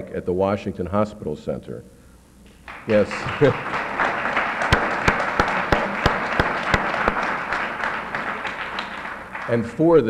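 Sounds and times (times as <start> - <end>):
loud close hand claps: 2.6 - 10.0
audience applauding: 2.7 - 10.0.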